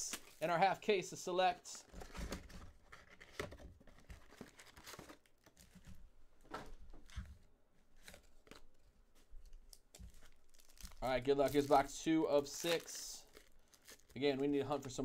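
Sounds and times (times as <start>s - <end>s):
foil packs crinkling and tearing: 10.0s - 15.0s.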